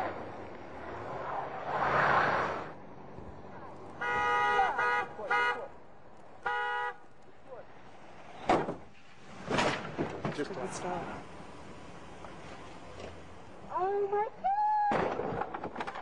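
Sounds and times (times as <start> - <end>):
rushing vehicle noise: 0.0 - 13.8
car horn honking: 4.0 - 5.7, 6.4 - 7.0.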